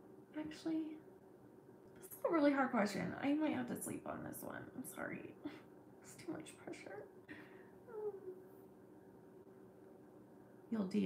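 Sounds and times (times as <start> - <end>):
faint steady hum: 0.0 - 11.0
woman groaning: 7.9 - 8.4.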